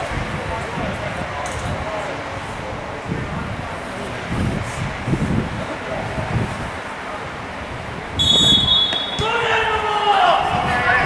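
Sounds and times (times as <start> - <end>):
referee's whistle blast: 8.2 - 9.6
players shouting: 8.2 - 11.0.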